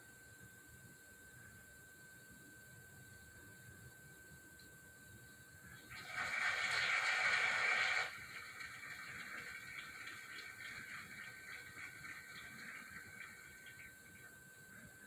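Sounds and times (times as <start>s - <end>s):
audience applause from television: 5.8s - 14.0s.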